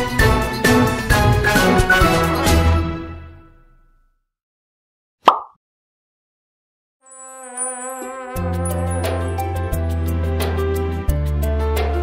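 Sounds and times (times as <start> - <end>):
cartoon plop sound effect: 5.2 - 5.6.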